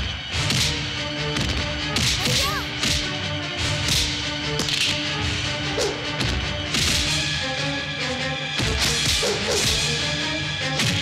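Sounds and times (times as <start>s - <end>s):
background film score: 0.0s - 11.0s.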